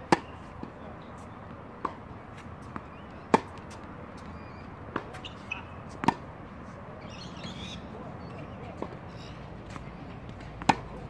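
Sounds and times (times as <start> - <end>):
tennis ball struck by racket: 0.0 - 0.8, 1.8 - 4.3, 4.9 - 6.3, 9.6 - 11.0.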